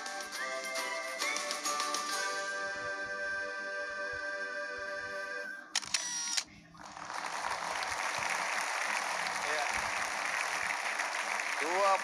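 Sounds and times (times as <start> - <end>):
background music: 0.0 - 5.7
studio audience applauding: 6.8 - 12.0.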